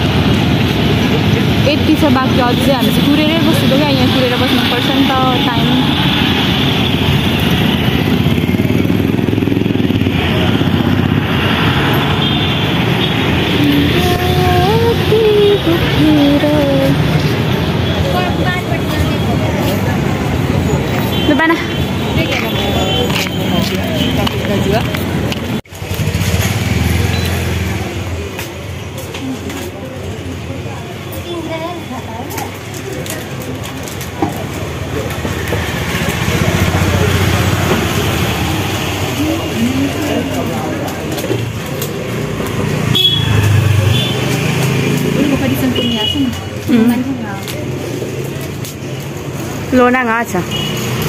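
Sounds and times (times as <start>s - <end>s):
indistinct voices talking: 0.0s - 51.0s
vehicle engines rumbling: 0.0s - 51.0s
background voices: 13.4s - 17.5s.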